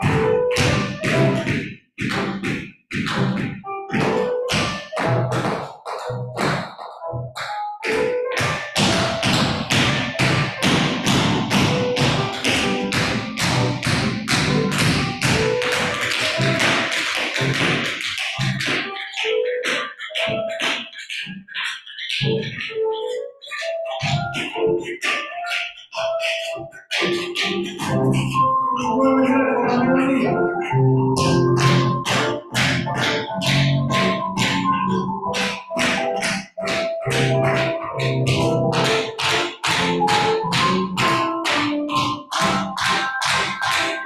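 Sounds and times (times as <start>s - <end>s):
tap shoes on hard floor: 0.0s - 28.4s, 31.1s - 44.0s
recorded music: 0.0s - 44.0s.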